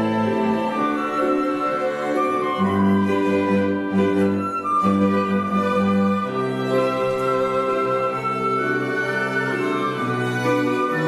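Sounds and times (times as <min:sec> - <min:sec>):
cello bowing: 0:00.0 - 0:11.0
electric piano: 0:00.0 - 0:11.0
flute: 0:00.0 - 0:11.0
oboe: 0:00.0 - 0:11.0
violins bowing: 0:00.0 - 0:11.0.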